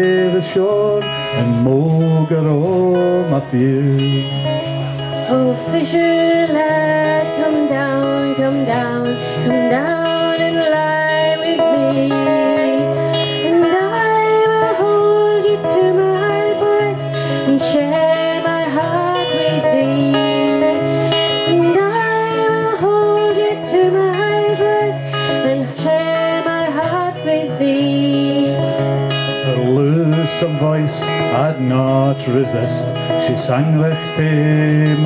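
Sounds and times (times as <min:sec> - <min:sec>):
acoustic guitar: 0:00.0 - 0:35.0
woman singing folk song: 0:00.0 - 0:35.0.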